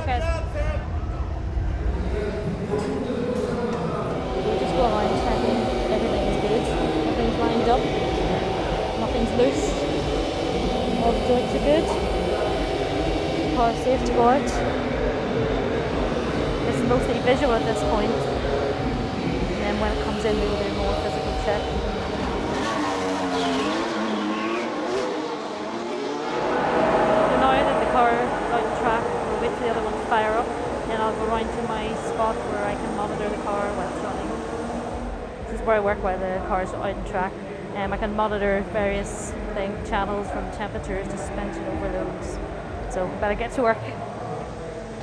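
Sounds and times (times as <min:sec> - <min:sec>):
mechanical hum: 0:00.0 - 0:24.8, 0:26.3 - 0:43.3
high whine: 0:00.0 - 0:45.0
racing car engine running: 0:01.0 - 0:43.7
speech: 0:01.9 - 0:09.9, 0:10.9 - 0:12.0, 0:13.6 - 0:15.7, 0:16.6 - 0:18.7, 0:19.5 - 0:21.7, 0:27.2 - 0:34.4, 0:35.5 - 0:44.0
constant high tone: 0:03.0 - 0:25.0, 0:25.8 - 0:43.9.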